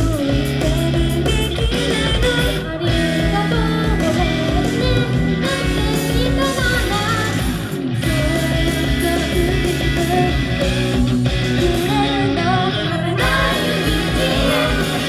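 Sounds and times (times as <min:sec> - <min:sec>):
pop-rock song over sound system: 0:00.0 - 0:15.0
women singing in a group: 0:11.8 - 0:15.0.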